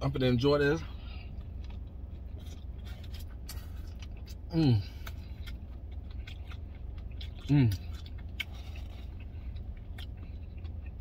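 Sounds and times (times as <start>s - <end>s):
steady low hum: 0.0s - 11.0s
person biting and chewing: 1.3s - 11.0s.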